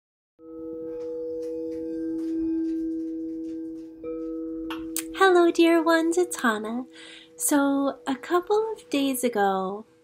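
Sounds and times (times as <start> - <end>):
sustained ringing tones: 0.4 - 10.0.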